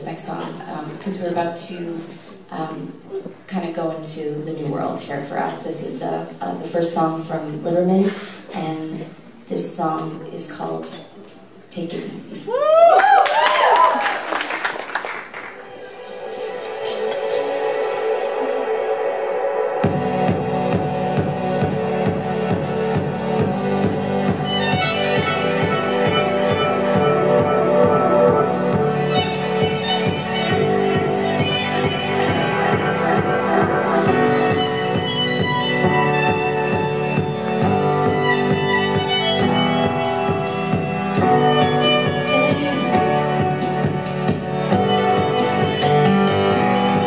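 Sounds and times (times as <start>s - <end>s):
sustained droning chord: 15.6s - 36.7s
bowed violin notes: 15.6s - 47.0s
pulsing electronic beat: 17.4s - 45.8s.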